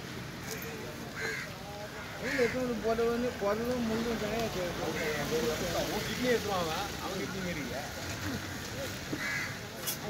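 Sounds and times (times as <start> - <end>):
crow cawing: 0.5 - 2.8, 4.9 - 5.3, 9.1 - 9.6.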